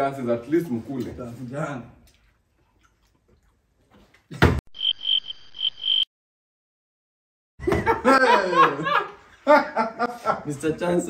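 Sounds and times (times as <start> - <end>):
high pulsing beep: 4.7 - 6.1.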